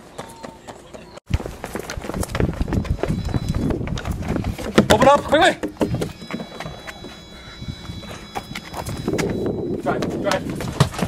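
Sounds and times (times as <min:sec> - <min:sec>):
running footsteps: 0:00.0 - 0:11.0.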